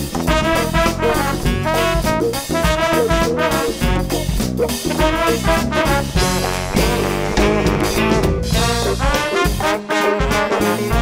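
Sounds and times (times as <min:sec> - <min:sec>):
bass and drums: 0:00.0 - 0:11.0
horn section playing: 0:00.2 - 0:11.0.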